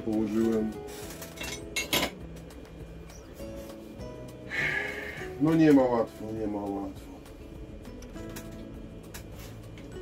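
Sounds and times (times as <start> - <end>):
background music: 0.0 - 10.0
small objects clinking: 1.1 - 2.2.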